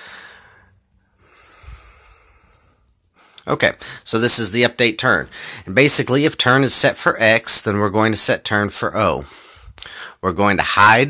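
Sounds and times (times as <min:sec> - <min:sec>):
person breathing close: 0:00.0 - 0:04.1, 0:05.3 - 0:05.7, 0:09.2 - 0:10.2.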